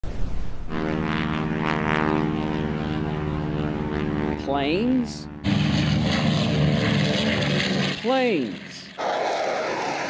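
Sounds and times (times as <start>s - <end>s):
aircraft engine running: 0.1s - 10.0s
rush of noise: 9.0s - 10.0s.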